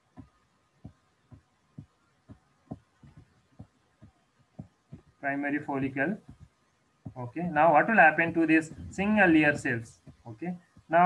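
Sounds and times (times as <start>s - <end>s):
pen tapping on screen: 0.1s - 5.2s, 6.2s - 7.2s.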